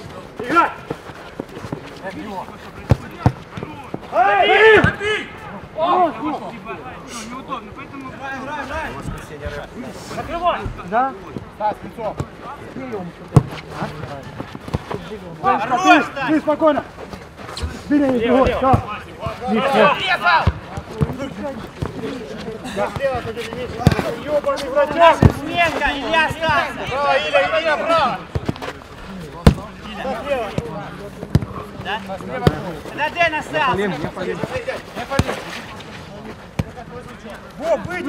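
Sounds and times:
players calling out: 0.0s - 38.0s.

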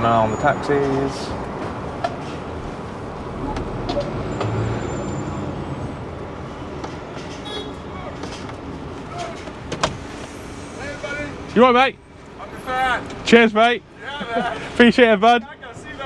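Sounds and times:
lorry engine and road rumble: 0.0s - 16.0s.

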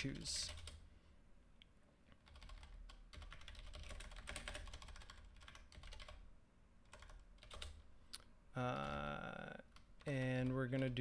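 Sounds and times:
typing on computer keyboard: 2.2s - 6.2s, 6.8s - 7.8s.

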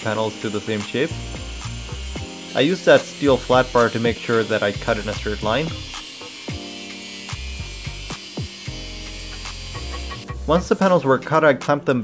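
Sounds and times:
angle grinder cutting metal: 0.0s - 10.4s
background music with deep bass: 0.0s - 12.0s.

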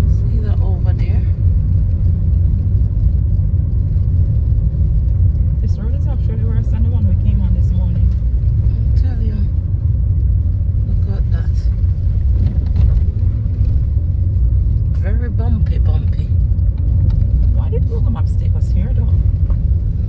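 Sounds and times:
car engine and tyres rumbling: 0.0s - 20.0s.

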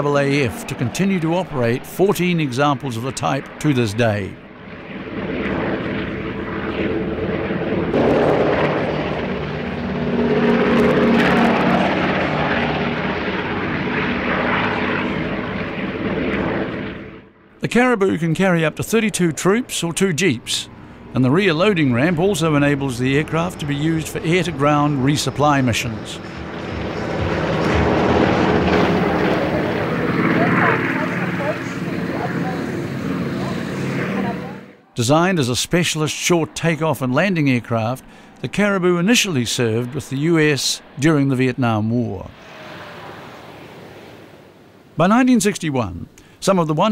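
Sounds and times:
propeller plane flying past: 0.0s - 45.4s.

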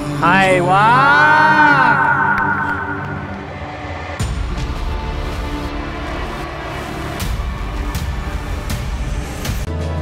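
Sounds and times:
men cheering: 0.7s - 3.6s.

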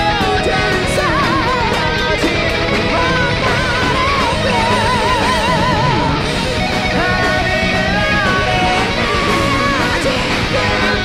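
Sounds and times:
heavy metal band playing live: 0.0s - 11.0s
guitar lead note with vibrato: 1.1s - 8.2s.

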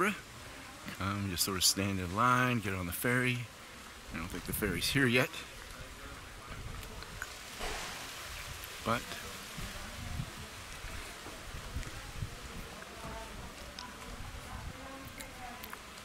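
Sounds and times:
faint distant voices: 0.0s - 16.0s.

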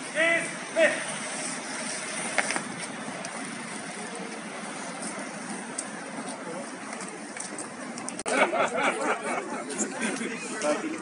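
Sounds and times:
men chatting in a group: 8.3s - 11.0s.

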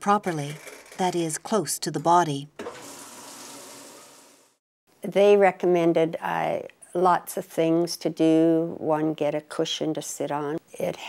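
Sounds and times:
water running into washing machine: 2.6s - 4.6s.

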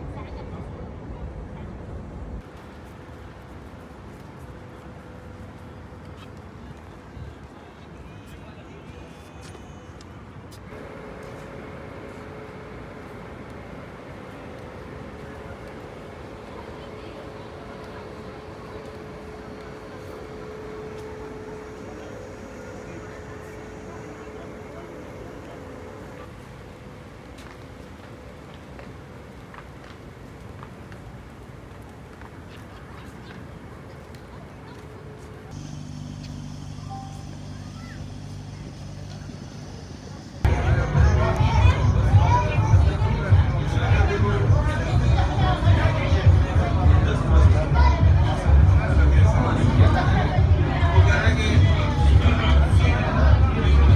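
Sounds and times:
outdoor city noise: 0.0s - 53.9s
boat engine hum: 9.8s - 53.9s
faint steady hum: 33.1s - 53.9s.

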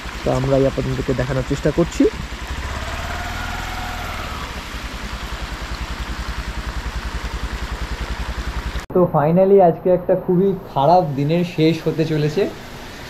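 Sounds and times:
rain hissing: 0.0s - 8.8s
motorcycle engine idling: 0.0s - 8.9s
river rushing: 2.2s - 7.2s.

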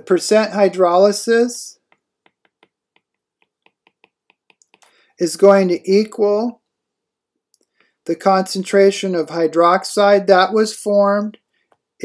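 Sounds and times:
stylus tapping on tablet screen: 1.8s - 5.0s.

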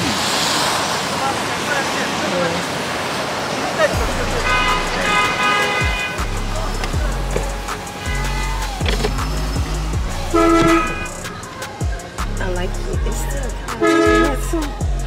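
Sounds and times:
car horns honking: 4.0s - 11.7s, 13.7s - 14.7s
music with deep bass line: 4.0s - 15.0s.

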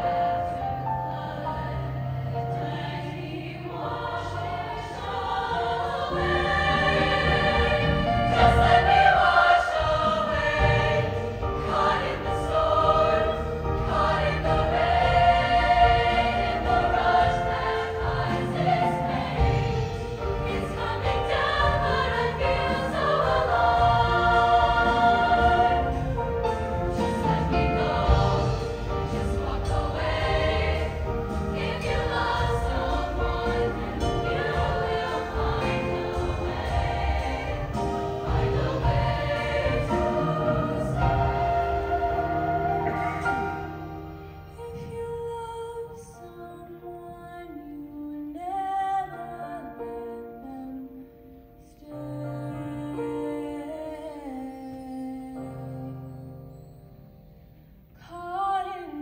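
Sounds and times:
female choir singing in harmony: 0.0s - 59.0s.

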